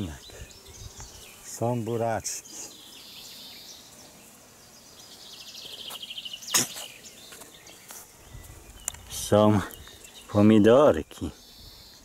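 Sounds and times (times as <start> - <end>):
garden ambience: 0.0 - 12.0
songbird trill: 0.0 - 12.0.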